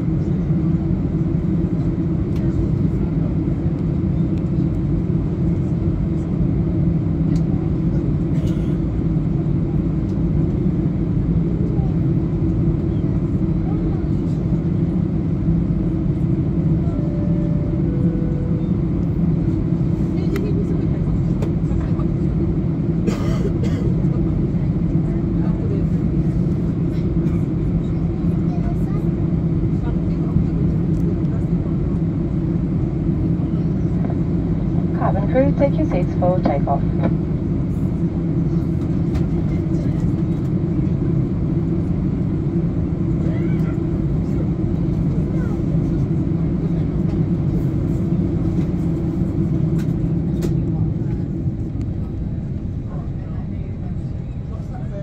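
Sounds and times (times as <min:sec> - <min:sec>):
jet engines rumbling in cabin: 0:00.0 - 0:55.0
faint cabin chime tones: 0:16.9 - 0:18.9.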